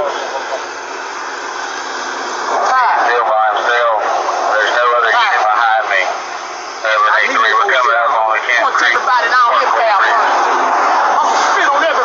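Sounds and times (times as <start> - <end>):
roadside traffic noise: 0.0 - 12.0
voices talking indistinctly: 0.0 - 12.0.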